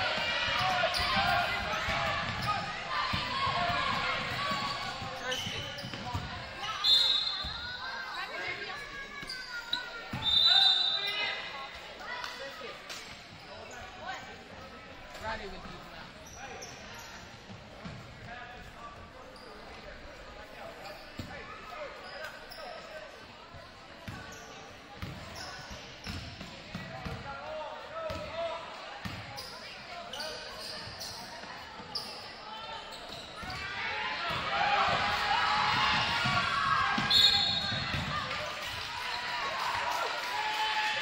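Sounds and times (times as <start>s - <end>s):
crowd shouting and cheering: 0.0s - 12.2s, 33.4s - 41.0s
sneaker squeaks: 0.4s - 11.8s, 12.4s - 14.5s, 15.1s - 23.2s, 24.0s - 27.2s, 29.0s - 34.4s, 37.0s - 38.2s.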